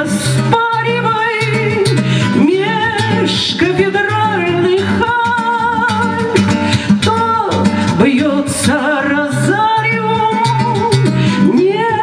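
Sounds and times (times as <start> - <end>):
plucked acoustic guitar: 0.0 - 12.0
woman singing with vibrato: 0.0 - 12.0.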